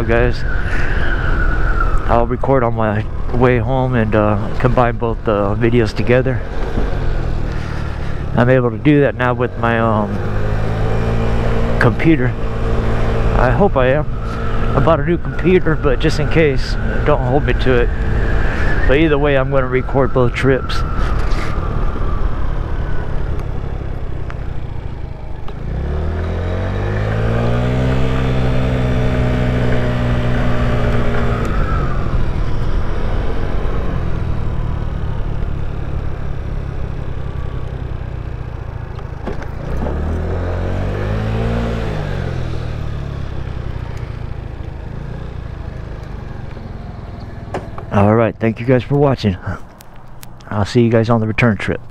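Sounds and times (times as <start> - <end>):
scooter engine revving: 23.5 - 48.1.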